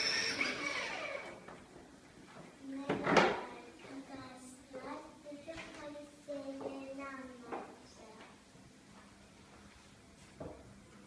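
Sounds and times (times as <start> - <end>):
toy motorbike running: 0.0 - 1.2.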